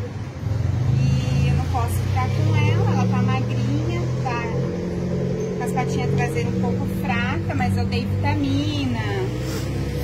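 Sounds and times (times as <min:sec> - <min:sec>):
woman talking: 0:01.0 - 0:04.8, 0:05.6 - 0:09.5.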